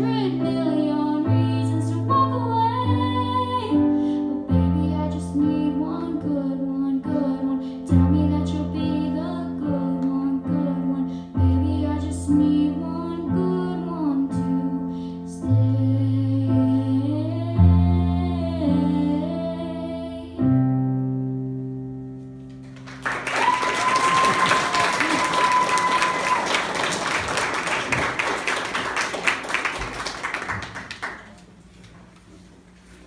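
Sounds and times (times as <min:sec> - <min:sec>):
girl singing: 0:00.0 - 0:20.6
electric piano chords: 0:00.0 - 0:23.0
audience applause: 0:22.6 - 0:31.5.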